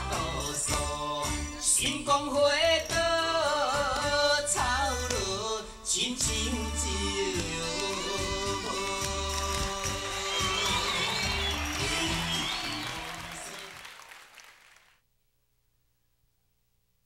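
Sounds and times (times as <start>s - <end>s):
pop music over sound system: 0.0s - 13.9s.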